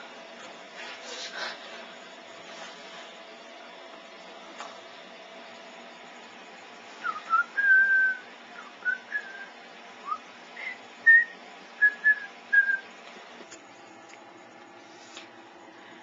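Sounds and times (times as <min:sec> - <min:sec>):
person whistling a tune: 0:07.0 - 0:12.9.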